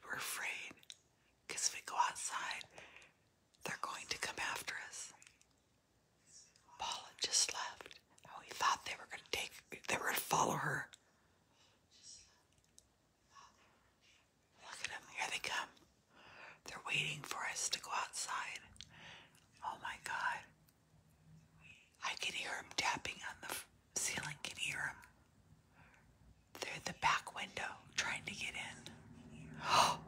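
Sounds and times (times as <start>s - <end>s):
person whispering: 0.0s - 2.7s, 3.6s - 5.4s, 6.4s - 11.0s, 14.5s - 15.8s, 16.6s - 18.9s, 19.5s - 20.6s, 21.6s - 25.2s, 26.6s - 30.0s.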